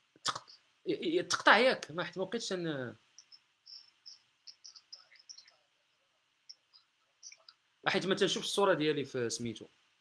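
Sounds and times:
faint high-pitched chirps: 3.1s - 5.8s.

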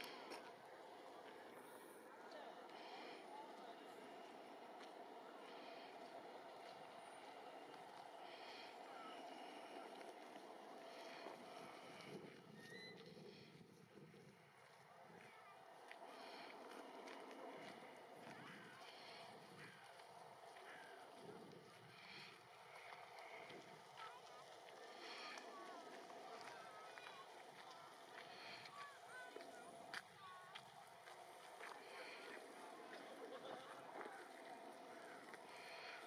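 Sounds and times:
distant voices: 0.0s - 36.0s.

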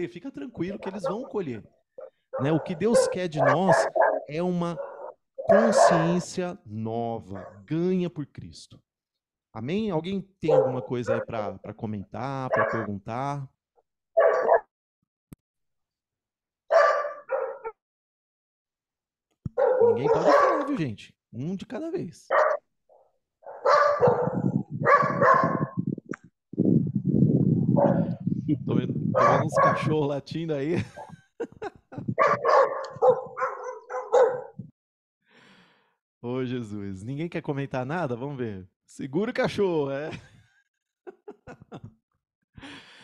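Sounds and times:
dogs barking: 0.5s - 6.3s, 7.3s - 7.6s, 10.4s - 11.3s, 12.5s - 12.9s, 14.2s - 14.7s, 16.7s - 17.8s, 19.6s - 20.8s, 22.3s - 22.6s, 23.4s - 25.8s, 27.8s - 28.2s, 29.1s - 29.9s, 32.1s - 34.6s.

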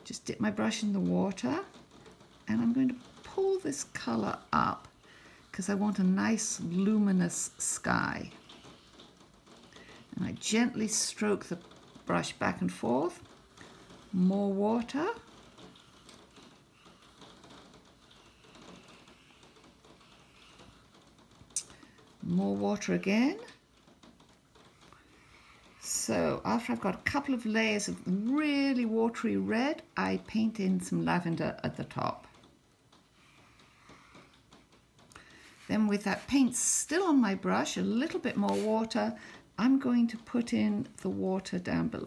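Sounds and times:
brush scratching on paper: 2.6s - 21.9s, 35.3s - 39.0s
faint soft touches: 33.0s - 39.4s.

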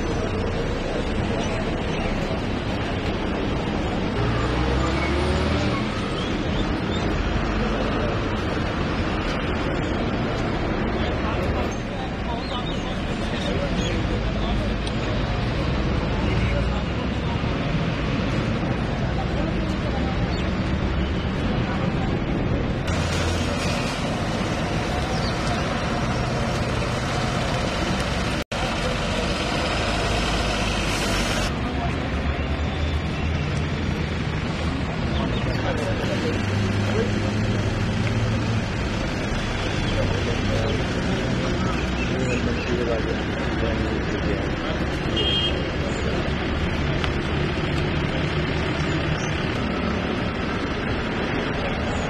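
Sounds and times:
road traffic rumble: 0.0s - 52.0s
coach engines idling: 18.4s - 52.0s.

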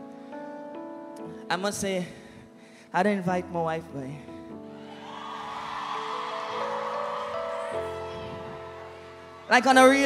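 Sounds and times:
live band playing soft chords: 4.6s - 9.6s
crowd noise: 4.7s - 10.0s.

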